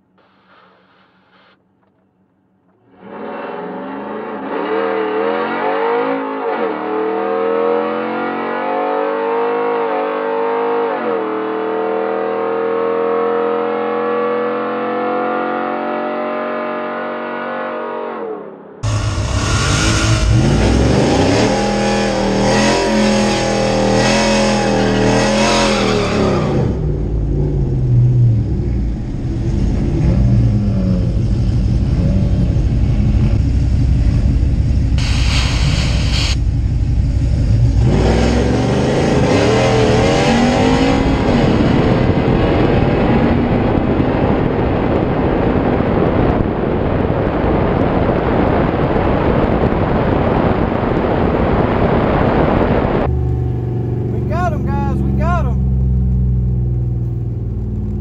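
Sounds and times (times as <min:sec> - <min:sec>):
rough engine noise close up: 0:18.8 - 0:58.0
truck engine accelerating: 0:18.8 - 0:58.0.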